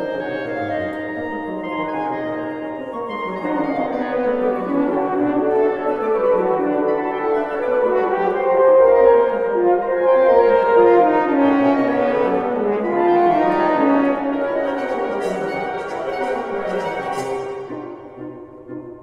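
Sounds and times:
wind quartet playing: 0:00.0 - 0:19.0.

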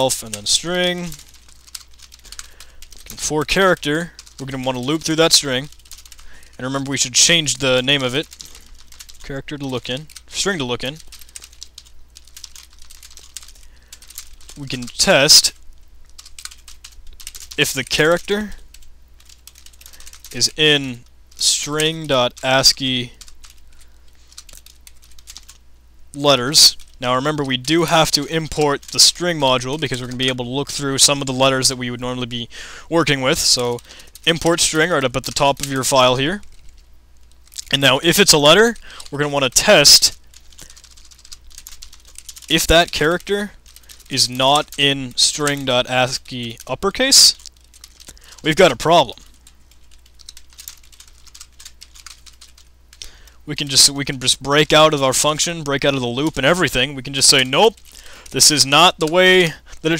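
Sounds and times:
keyboard typing: 0:00.0 - 0:25.6, 0:26.2 - 0:31.7, 0:33.3 - 0:59.3
faint low hum: 0:00.0 - 0:59.9.

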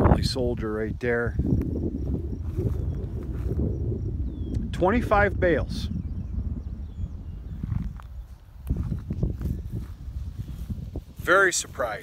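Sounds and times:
wind rumble on microphone: 0:00.0 - 0:12.0
footsteps through hay field: 0:02.0 - 0:03.7, 0:07.6 - 0:12.0.

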